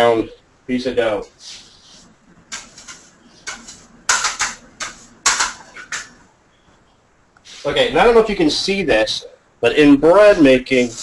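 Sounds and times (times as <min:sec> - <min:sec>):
dough knocking and brushing: 0:01.2 - 0:06.3, 0:10.2 - 0:11.0.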